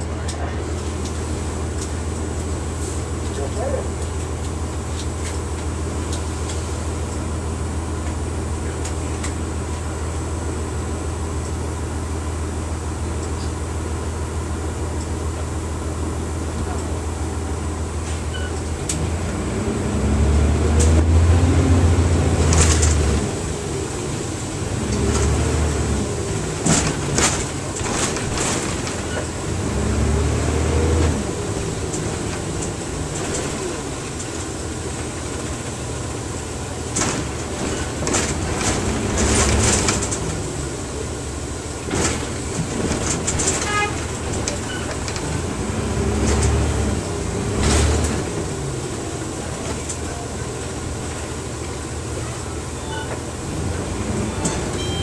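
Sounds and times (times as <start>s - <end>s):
bus engine: 0.0s - 55.0s
rattles and clatters: 22.4s - 23.3s, 26.2s - 29.5s, 36.8s - 40.6s, 41.8s - 46.8s.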